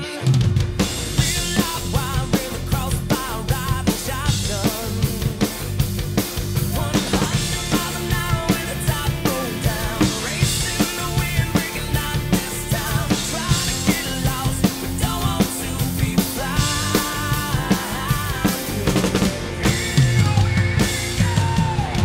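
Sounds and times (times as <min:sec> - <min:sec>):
rock backing track: 0:00.0 - 0:22.0
rock drum kit playing: 0:00.0 - 0:22.0.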